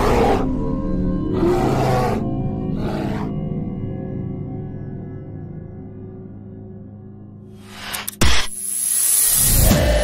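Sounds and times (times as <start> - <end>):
bear roaring: 0.0 - 0.6, 1.3 - 3.4.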